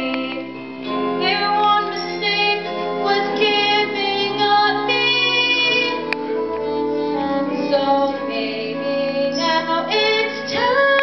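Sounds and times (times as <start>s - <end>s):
instrumental accompaniment: 0.0s - 11.0s
girl singing slow melody: 7.1s - 11.0s.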